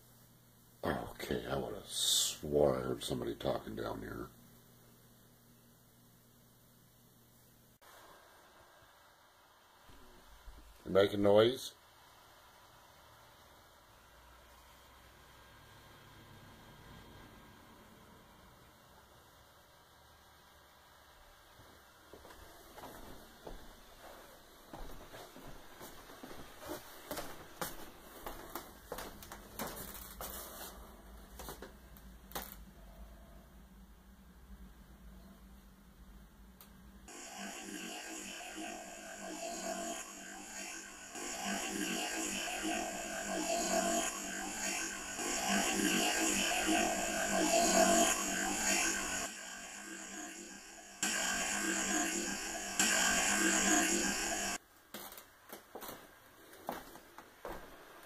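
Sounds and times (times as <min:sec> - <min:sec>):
faint low hum: 0:00.0 - 0:23.4, 0:28.6 - 0:37.7
recorder hiss: 0:00.0 - 0:58.0.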